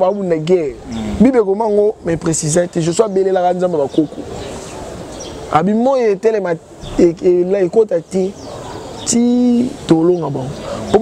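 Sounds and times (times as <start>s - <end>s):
man speaking: 0.0s - 4.4s, 5.5s - 8.4s, 9.0s - 11.0s.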